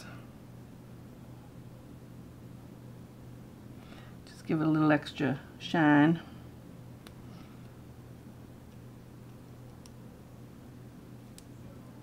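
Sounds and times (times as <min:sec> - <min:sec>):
low steady hum: 0:00.0 - 0:12.0
faint plastic clicks: 0:11.2 - 0:11.5.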